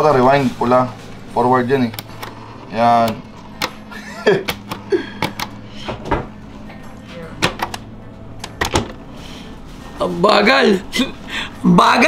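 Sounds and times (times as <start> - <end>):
tape rewinder motor hum: 0.0 - 6.8.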